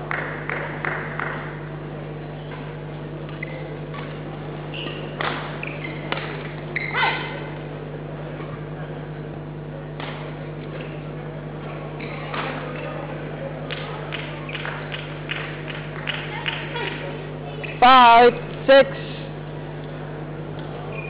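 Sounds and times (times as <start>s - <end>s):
court shoes squeaking: 2.4s - 13.3s, 14.2s - 15.2s, 15.9s - 18.6s, 19.3s - 21.0s
rackets hitting shuttlecock: 4.8s - 6.7s.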